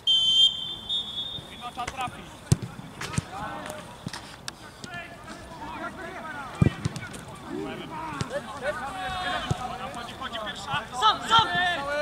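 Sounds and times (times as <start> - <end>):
players calling out: 4.6 - 12.0.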